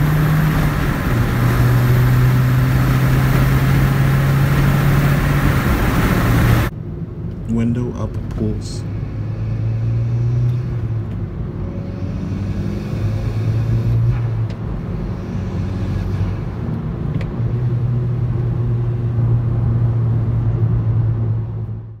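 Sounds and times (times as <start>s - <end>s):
car engine accelerating: 0.0s - 6.7s, 8.1s - 22.0s.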